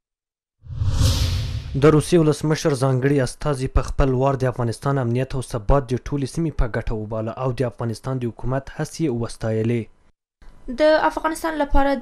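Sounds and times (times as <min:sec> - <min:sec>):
whoosh sound effect: 0:00.6 - 0:02.0
low rumble: 0:00.7 - 0:02.0
man narrating: 0:01.8 - 0:09.9.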